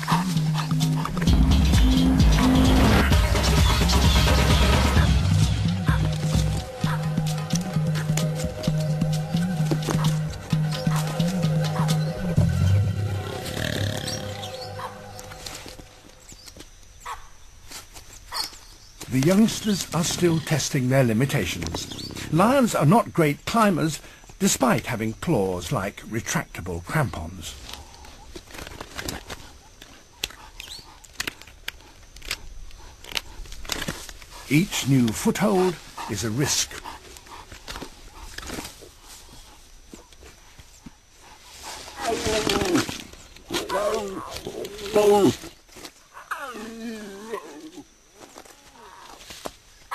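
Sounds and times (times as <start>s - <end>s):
background music: 0.0s - 16.0s
lion growling: 5.8s - 15.4s, 21.2s - 22.5s
claws scraping bark and branches: 13.4s - 20.6s, 27.6s - 49.9s.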